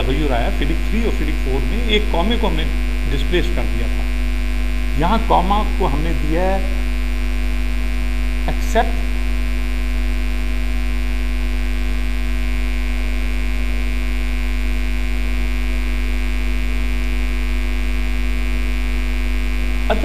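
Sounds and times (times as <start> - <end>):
electrical mains hum: 0.0 - 20.0.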